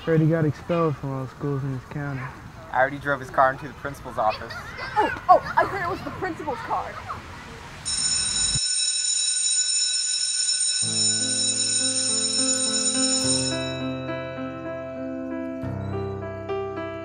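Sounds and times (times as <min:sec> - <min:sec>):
high electronic ringing tone: 0:07.9 - 0:14.1
sustained keyboard chords: 0:10.8 - 0:17.0.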